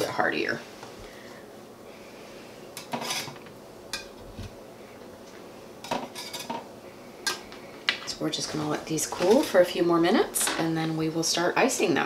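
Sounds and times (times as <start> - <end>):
metal spatula scraping baking sheet: 2.9 - 3.4.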